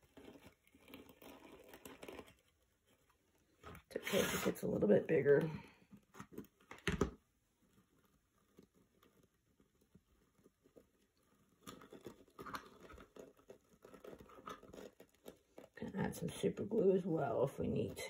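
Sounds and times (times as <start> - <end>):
scouring pad crinkling: 0.0 - 18.0.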